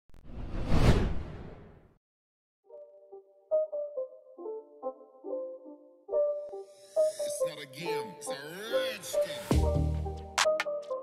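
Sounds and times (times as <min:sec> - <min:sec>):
whoosh sound effect: 0:00.2 - 0:01.8.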